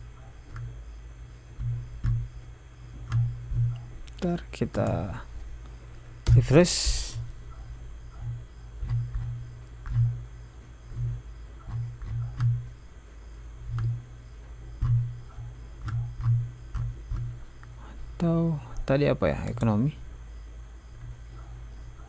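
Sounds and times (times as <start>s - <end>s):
computer mouse clicks: 0.5s - 0.7s, 3.0s - 4.2s, 11.0s - 12.7s, 14.8s - 17.3s
low thuds: 1.5s - 4.0s, 5.2s - 13.0s, 13.6s - 18.2s.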